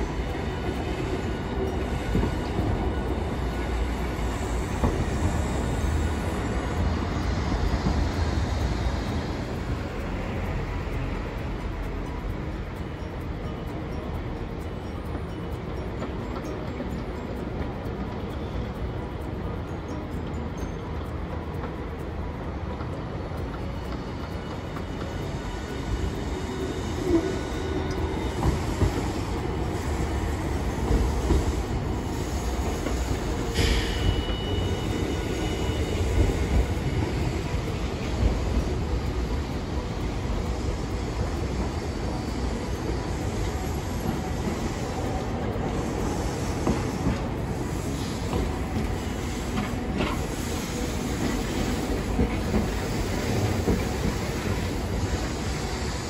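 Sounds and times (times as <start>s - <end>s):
road traffic: 0.0s - 56.0s
streetcar clanks: 0.0s - 56.0s
streetcars rumbling on tracks: 0.0s - 56.0s
high squeal: 24.5s - 38.6s.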